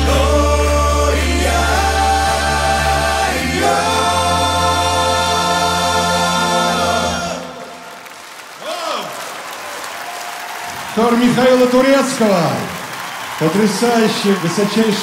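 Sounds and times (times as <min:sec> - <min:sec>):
male choir with band: 0:00.0 - 0:07.9
applause: 0:07.7 - 0:15.0.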